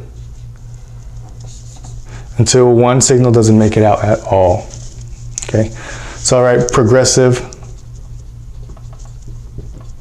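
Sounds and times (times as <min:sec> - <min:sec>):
steady low hum: 0:00.0 - 0:10.0
marker scratching on whiteboard: 0:07.6 - 0:10.0.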